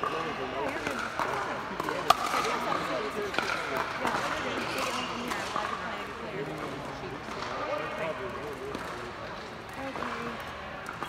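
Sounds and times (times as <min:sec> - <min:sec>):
chatter of several voices: 0:00.0 - 0:11.0.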